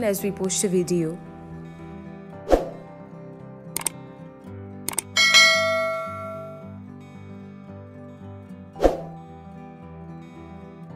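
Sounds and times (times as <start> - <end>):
soft background music: 0.0 - 10.9
double mouse clicks: 3.8 - 4.0, 4.9 - 5.2
bright bell chime: 5.2 - 6.7.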